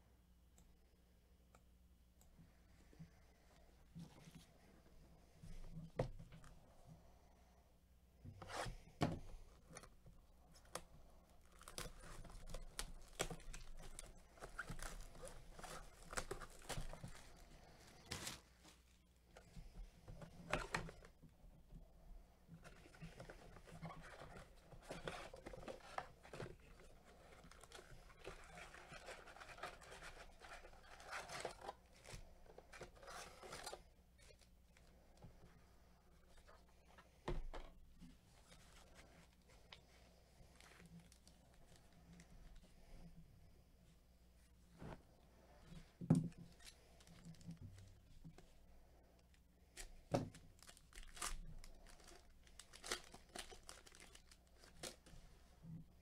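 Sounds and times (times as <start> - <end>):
crinkling and scraping: 2.4 - 7.0, 8.2 - 56.0
plastic wrap tearing: 11.4 - 18.5, 50.3 - 55.1.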